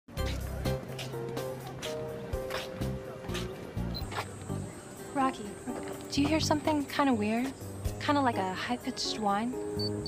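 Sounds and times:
background music: 0:00.1 - 0:10.0.

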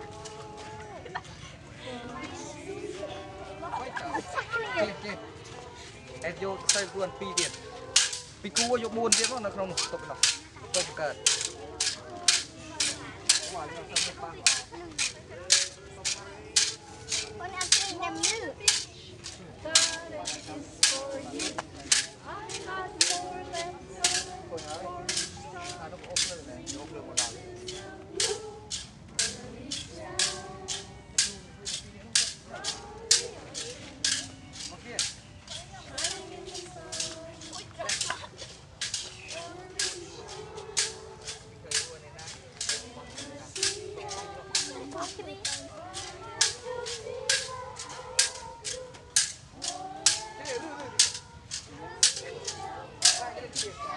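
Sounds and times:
sharp rhythmic clacks: 0:06.6 - 0:41.9, 0:42.6 - 0:53.9
children chanting in unison: 0:42.6 - 0:53.9.

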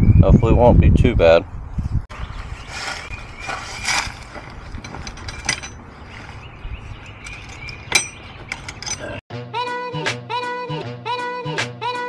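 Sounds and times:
metallic clicks of hand tools: 0:07.1 - 0:09.2.

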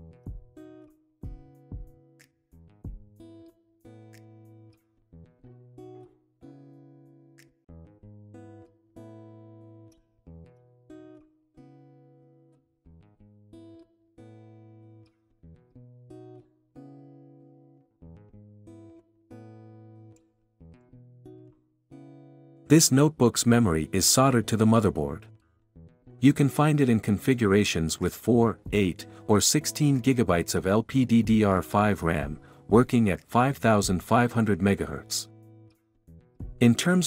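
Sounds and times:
acoustic guitar chords: 0:00.0 - 0:37.0.

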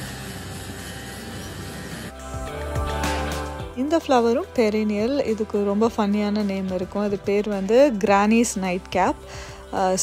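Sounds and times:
air conditioner fan rush: 0:00.0 - 0:02.5.

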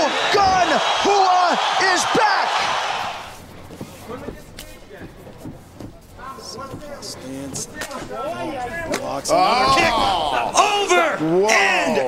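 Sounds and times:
low arena background noise: 0:00.0 - 0:12.0.

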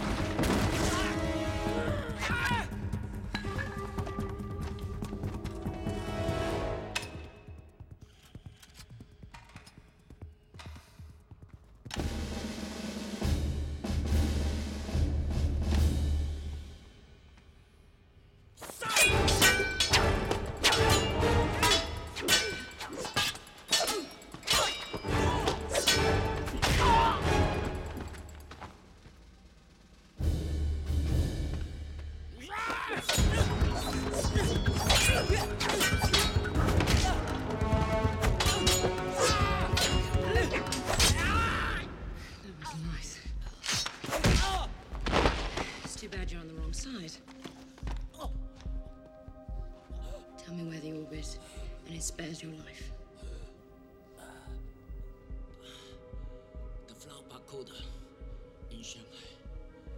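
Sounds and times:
film music score: 0:00.0 - 0:11.0, 0:11.8 - 0:59.9.

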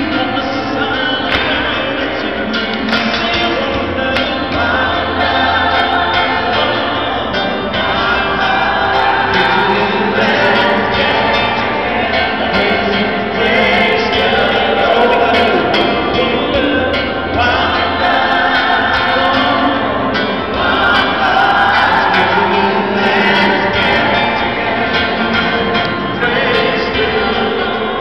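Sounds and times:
gospel group singing in harmony: 0:00.0 - 0:28.0
steady low bass: 0:03.4 - 0:27.6.

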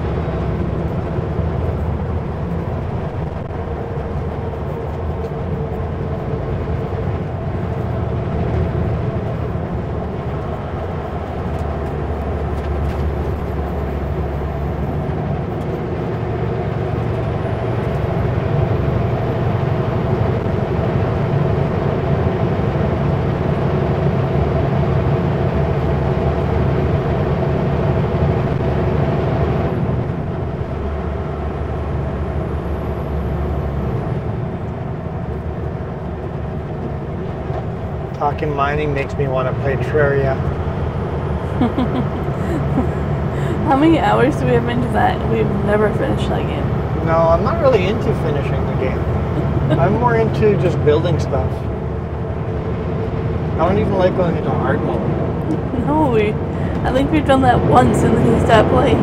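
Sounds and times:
road noise: 0:00.0 - 0:59.0
truck diesel engine rumble: 0:00.0 - 0:59.0.

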